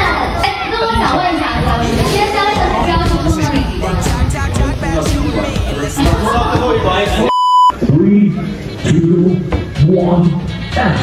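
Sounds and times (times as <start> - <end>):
censor bleep: 7.3 - 7.8.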